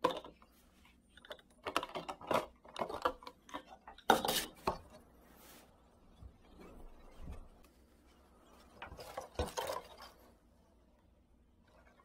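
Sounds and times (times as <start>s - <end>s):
plastic bottle crackling and clicking: 1.2s - 4.9s.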